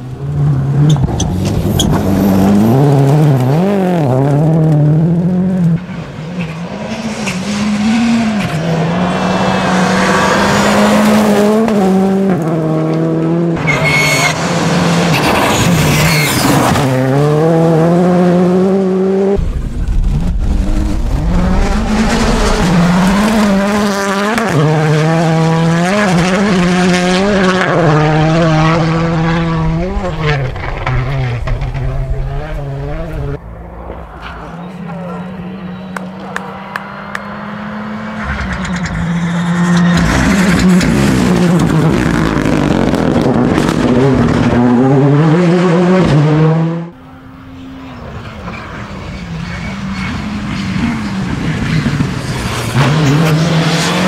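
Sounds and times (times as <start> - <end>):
rally car engines revving: 0.0 - 54.0.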